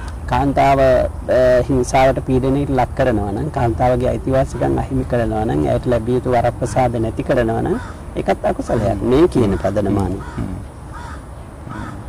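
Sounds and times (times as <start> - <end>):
crow cawing: 4.4 - 5.1, 7.6 - 12.0.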